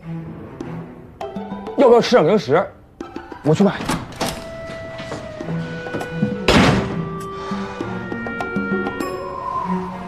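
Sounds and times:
soft background music: 0.0 - 10.0
door shutting with heavy thunk: 6.3 - 7.2.

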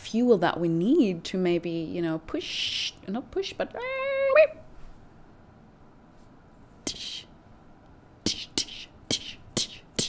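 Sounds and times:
woman humming: 6.9 - 7.3, 8.3 - 10.0.

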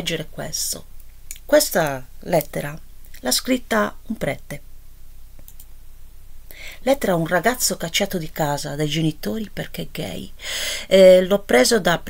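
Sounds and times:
woman speaking: 0.0 - 4.6, 6.6 - 12.0
low steady hum: 0.0 - 12.0
faint clicks: 5.4 - 5.7.

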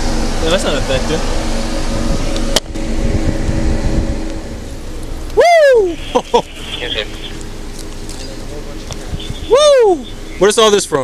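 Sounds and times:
faint steady hum: 0.0 - 11.0
low uneven rumble: 0.0 - 11.0.

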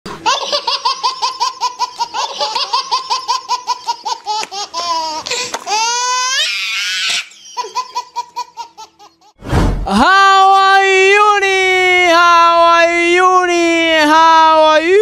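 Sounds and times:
cartoon laughter: 0.1 - 9.4
brief rush of noise: 9.4 - 9.9.

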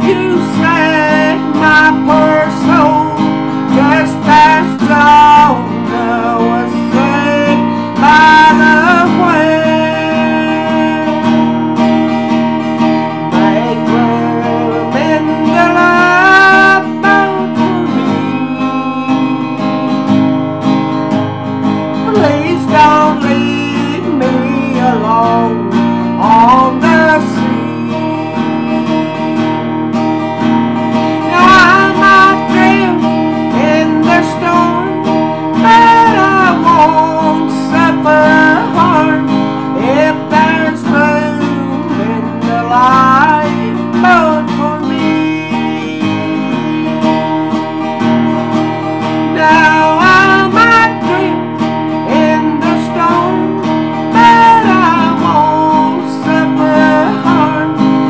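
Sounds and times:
acoustic guitar strumming chords: 0.0 - 58.0
wavering melody line: 9.3 - 32.8.

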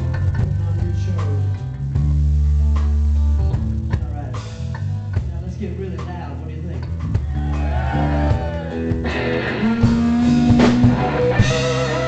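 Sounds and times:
bass playing low notes: 0.0 - 12.0
electric guitar: 6.8 - 12.0.

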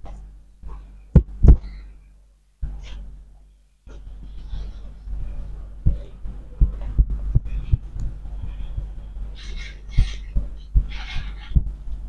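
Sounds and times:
dull low thumps of massage: 0.0 - 1.8, 3.9 - 12.0.

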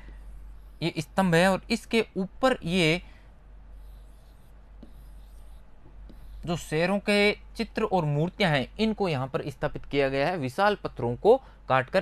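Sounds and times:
stylus rubbing on a screen: 0.0 - 1.6, 3.7 - 7.1
steady low hum: 0.0 - 11.7.

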